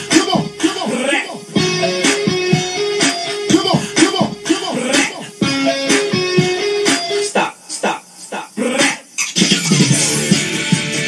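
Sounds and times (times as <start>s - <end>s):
music: 0.0s - 11.0s.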